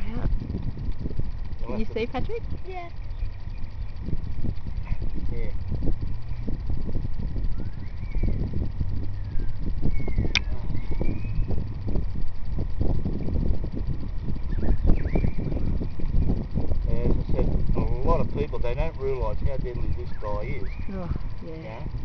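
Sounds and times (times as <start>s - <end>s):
microphone handling rumble: 0.0s - 22.0s
sharp click: 10.3s - 10.6s.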